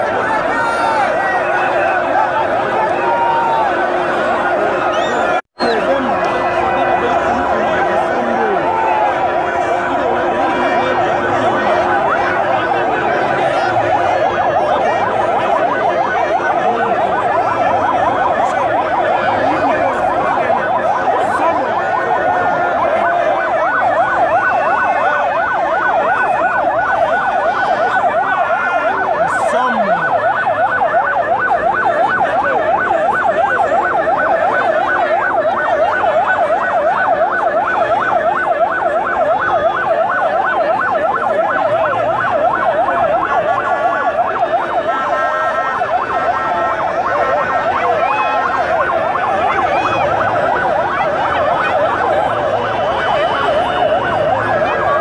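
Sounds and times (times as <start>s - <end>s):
vehicle siren yelping: 0.0s - 55.0s.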